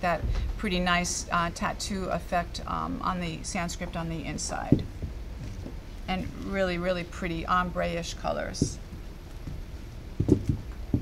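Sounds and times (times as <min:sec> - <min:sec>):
shoe soles knocking on table: 0:10.2 - 0:11.0.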